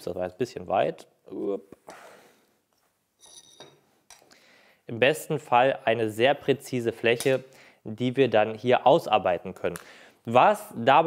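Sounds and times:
faint metallic ring: 3.2s - 4.2s.

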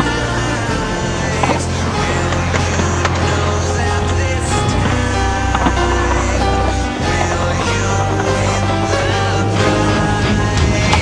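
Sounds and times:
music with sustained notes and bass: 0.0s - 11.0s.

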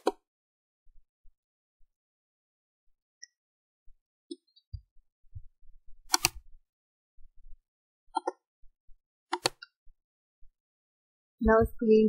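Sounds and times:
computer mouse clicks: 6.1s - 6.4s, 8.2s - 8.4s, 9.3s - 9.7s.

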